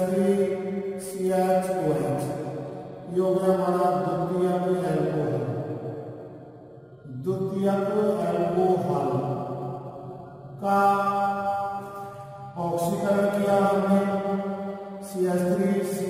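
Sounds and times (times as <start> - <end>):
person chanting: 0.0 - 16.0.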